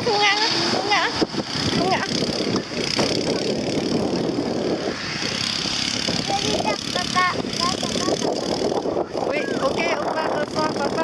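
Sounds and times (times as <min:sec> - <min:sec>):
voices: 0:00.0 - 0:04.5, 0:06.0 - 0:11.0
engine running: 0:00.0 - 0:11.0.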